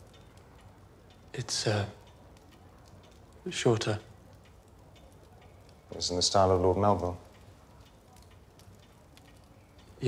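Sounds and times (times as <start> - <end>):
faint steady hiss: 0.0 - 10.0
wood fire crackling: 0.0 - 10.0.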